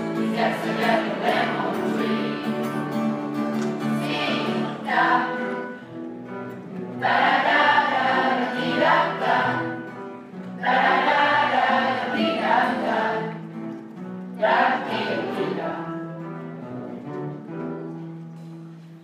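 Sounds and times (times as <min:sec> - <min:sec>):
children's choir singing: 0:00.0 - 0:06.0, 0:06.7 - 0:16.3
instrumental accompaniment: 0:00.0 - 0:19.0.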